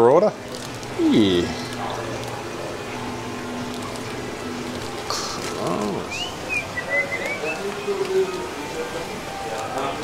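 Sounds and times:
aquarium pumps humming: 0.0 - 10.0.

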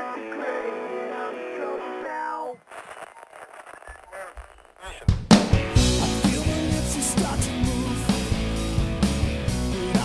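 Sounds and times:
rock song: 5.1 - 10.0
low bass notes: 5.4 - 10.0.

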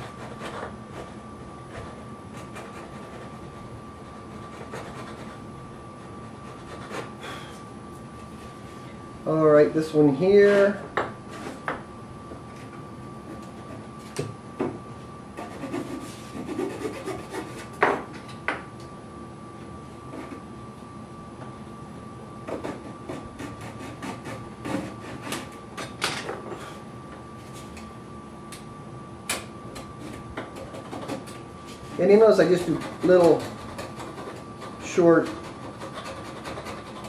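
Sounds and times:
faint steady hum: 0.0 - 37.0
chisel scraping wood: 15.4 - 17.8, 32.4 - 37.0.

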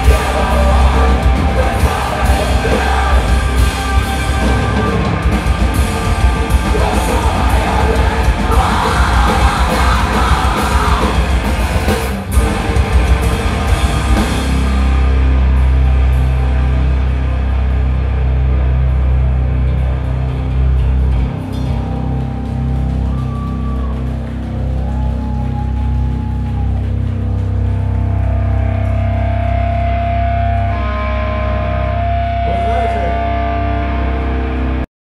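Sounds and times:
guitar feedback whines: 0.0 - 34.8
low amplifier hum: 0.0 - 34.8
electric guitars and bass drone: 0.0 - 34.9
heavy low rumble: 0.0 - 34.9.

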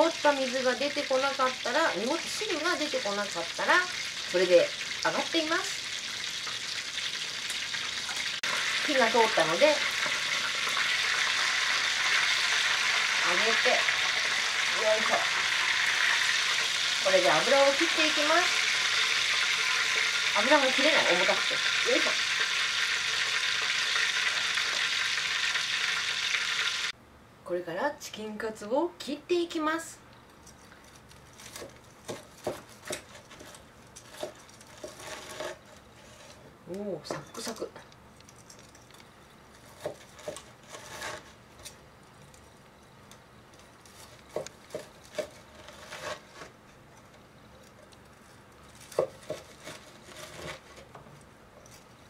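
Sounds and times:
hot oil sizzling: 0.0 - 27.0
knife crunching through fried crust: 31.0 - 36.4, 39.6 - 41.8, 43.8 - 46.6, 48.6 - 50.9.

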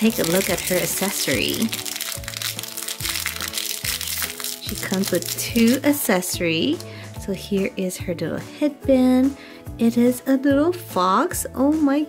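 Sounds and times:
plastic wrapper crinkling: 0.0 - 7.0
light background music: 0.0 - 12.0.

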